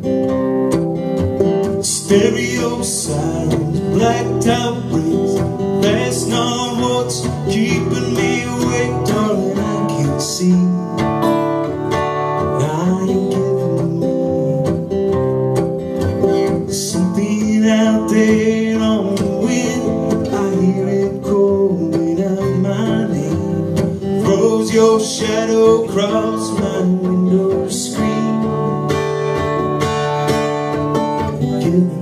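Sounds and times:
acoustic guitar strumming: 0.0 - 32.0.

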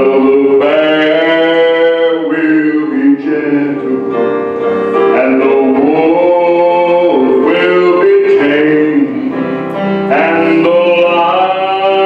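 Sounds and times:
electronic keyboard: 0.0 - 12.0
man singing gospel song: 0.0 - 12.0.

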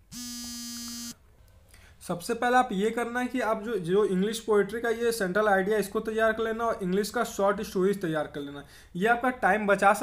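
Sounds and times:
steady buzzing tone: 0.0 - 1.2.

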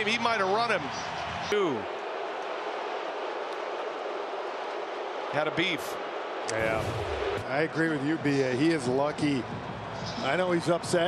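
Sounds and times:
ballpark crowd noise: 0.0 - 11.0.

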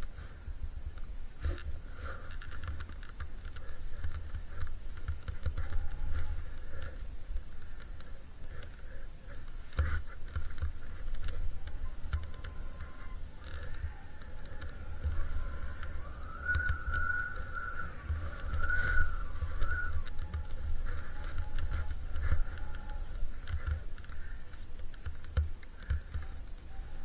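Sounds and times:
high wavering whine: 0.0 - 27.0
wind buffeting microphone: 0.0 - 27.0
skis running through snow: 1.4 - 26.9.

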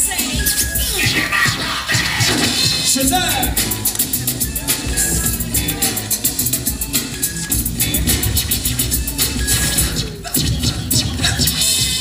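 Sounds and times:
hip-hop beat: 0.0 - 12.0
turntable scratching: 0.0 - 12.0.

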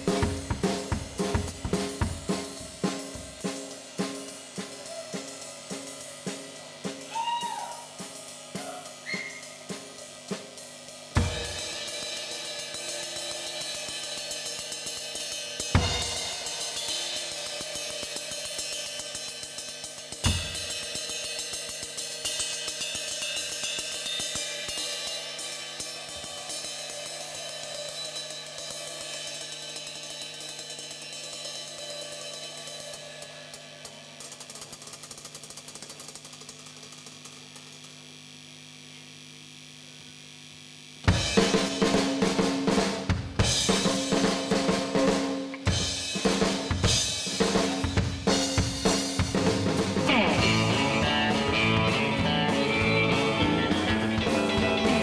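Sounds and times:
heavy drum hits: 0.0 - 4.8, 11.1 - 19.1, 20.0 - 21.8, 41.1 - 55.0
cymbal and hi-hat playing: 0.0 - 38.2, 41.0 - 55.0.

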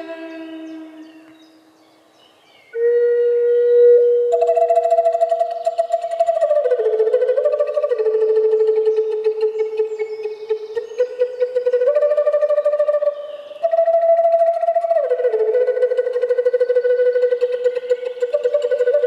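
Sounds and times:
wooden flute melody: 0.0 - 1.8, 2.7 - 19.0.

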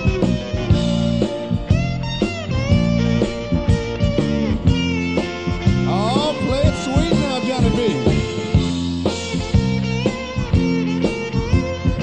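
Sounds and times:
bass guitar: 0.0 - 12.0
electric guitar bending notes: 0.0 - 12.0
steady drums: 0.0 - 12.0.

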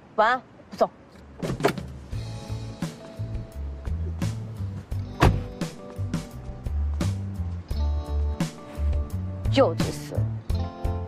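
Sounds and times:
background music: 2.0 - 11.0
car door latch clicks: 5.0 - 5.6
car door knock: 5.1 - 5.6.

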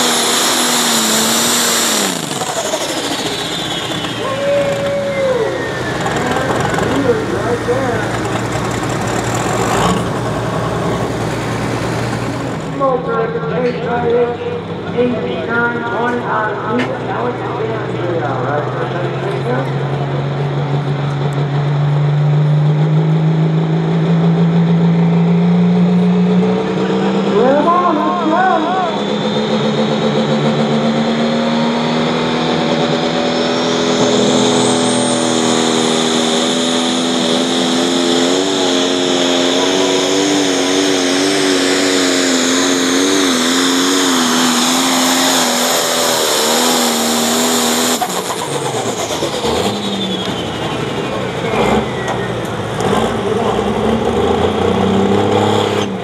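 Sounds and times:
diesel engine running flat out: 0.0 - 56.0
high turbo whine: 0.0 - 56.0.

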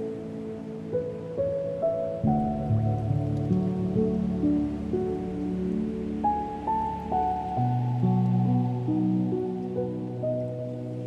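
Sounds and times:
faint ocean surf: 0.0 - 11.0
slow solo piano: 0.0 - 11.0.

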